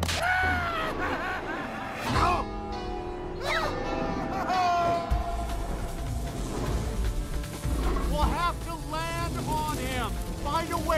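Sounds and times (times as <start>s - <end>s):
person laughing: 0.5s - 2.0s, 4.2s - 5.1s.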